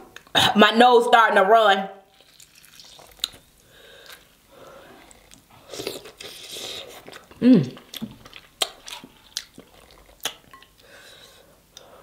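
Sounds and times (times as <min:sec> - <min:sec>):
wet chewing sounds: 0:02.1 - 0:10.9.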